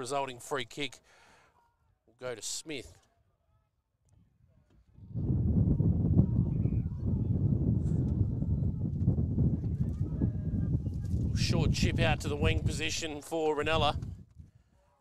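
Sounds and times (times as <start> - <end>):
wind buffeting microphone: 4.8 - 14.8.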